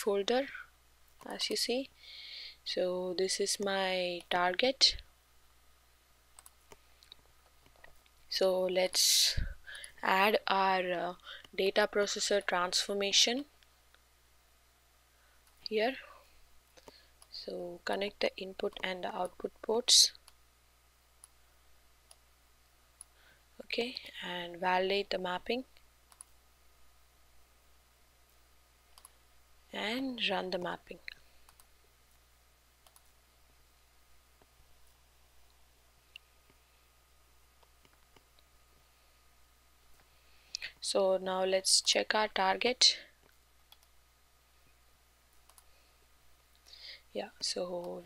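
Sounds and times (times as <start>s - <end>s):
computer mouse clicking: 6.3s - 8.2s, 16.8s - 17.4s, 25.7s - 26.4s, 28.9s - 29.2s, 31.0s - 31.7s, 32.8s - 33.2s, 43.2s - 44.0s, 45.3s - 45.7s.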